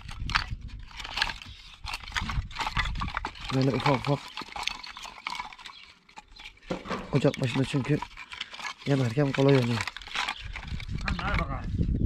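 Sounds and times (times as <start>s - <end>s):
kindling sticks knocking together: 0.0s - 11.4s.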